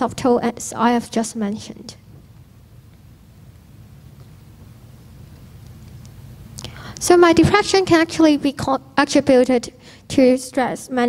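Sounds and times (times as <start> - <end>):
pa system hum: 0.0 - 11.0
breath into microphone: 6.6 - 7.0, 9.8 - 10.1.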